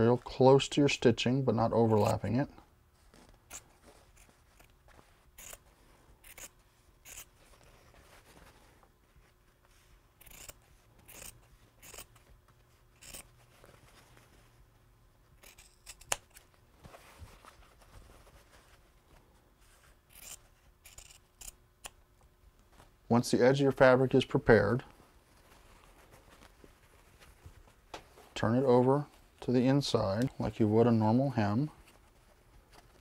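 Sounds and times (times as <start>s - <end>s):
scissors snipping fabric: 6.2s - 7.3s, 10.2s - 12.2s, 13.0s - 13.3s, 15.4s - 16.4s, 20.1s - 22.0s.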